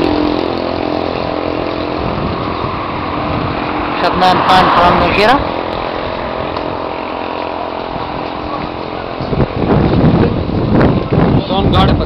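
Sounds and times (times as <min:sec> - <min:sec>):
small engine running: 0:00.0 - 0:12.0
voices: 0:03.9 - 0:10.5.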